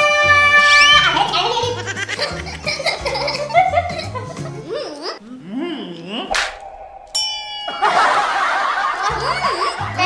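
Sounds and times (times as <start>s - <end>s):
bright ding chime: 6.9s - 8.6s.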